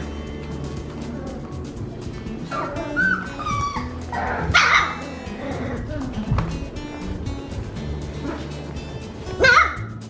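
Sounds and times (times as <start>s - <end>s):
puppies whining and yipping: 2.4s - 6.0s.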